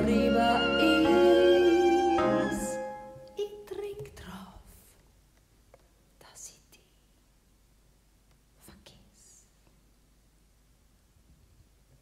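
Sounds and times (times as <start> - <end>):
woman whispering: 3.7 - 4.8, 6.2 - 7.1, 8.6 - 9.6.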